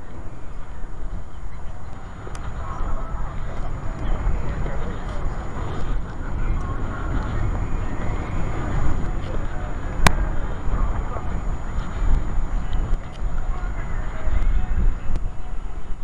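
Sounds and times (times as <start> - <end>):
loud low rumble: 0.0 - 16.0
people talking: 0.0 - 16.0.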